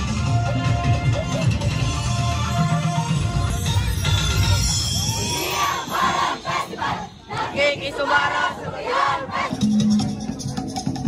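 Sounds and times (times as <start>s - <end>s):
group shouting a chant: 5.2s - 9.5s.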